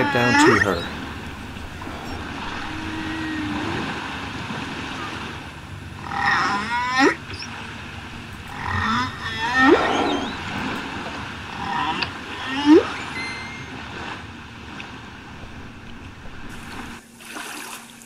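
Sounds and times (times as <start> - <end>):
whale whooping calls: 0.0 - 16.0
whale low moan: 0.0 - 17.0.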